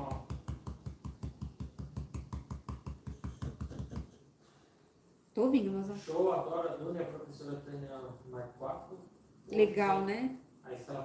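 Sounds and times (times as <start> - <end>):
stencil brush tapping wood: 0.0 - 4.2.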